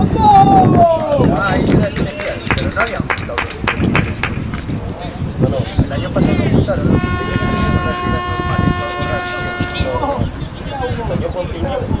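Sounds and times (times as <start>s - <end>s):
men shouting: 0.0s - 1.6s.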